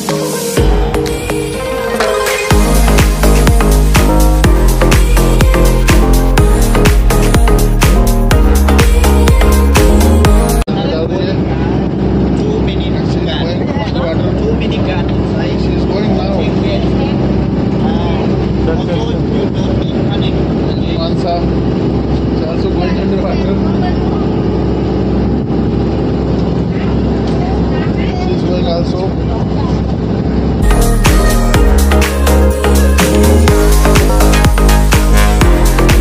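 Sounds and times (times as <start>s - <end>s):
indistinct voices: 0.6s - 21.6s.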